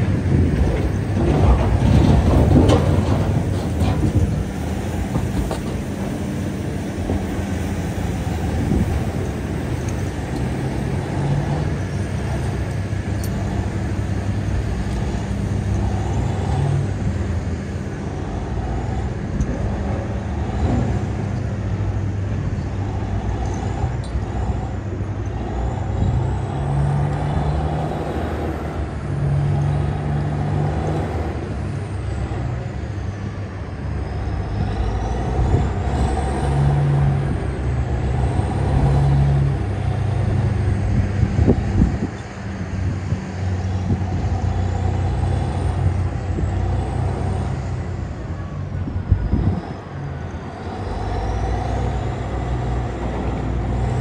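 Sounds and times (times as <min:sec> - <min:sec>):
diesel engine running under load: 0:00.0 - 0:54.0.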